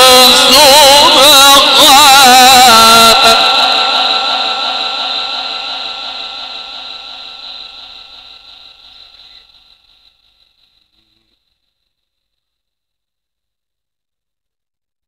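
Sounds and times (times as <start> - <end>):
person chanting with echo: 0.0 - 9.6.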